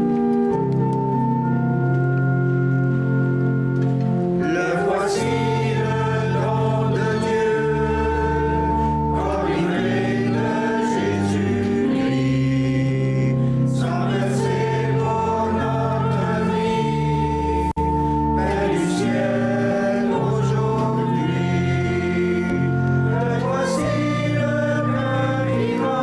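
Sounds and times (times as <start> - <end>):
pipe organ chords: 0.0 - 26.0
choir singing a hymn: 4.4 - 26.0.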